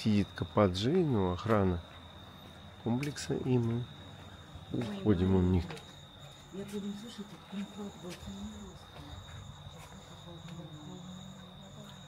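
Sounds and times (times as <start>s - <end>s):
crickets trilling: 0.0s - 12.0s
higher cricket trill: 0.0s - 12.0s.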